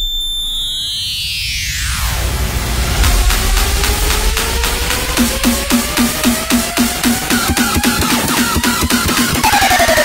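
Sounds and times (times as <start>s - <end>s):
high synth tone splitting: 5.4s - 10.0s.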